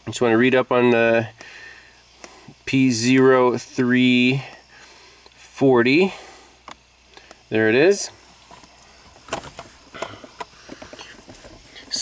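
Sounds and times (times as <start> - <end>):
faint steady hiss: 0.0 - 12.0.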